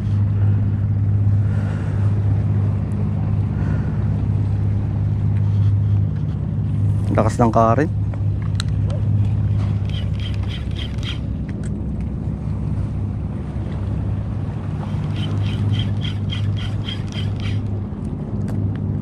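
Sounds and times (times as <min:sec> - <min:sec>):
boat engine humming: 0:00.0 - 0:19.0.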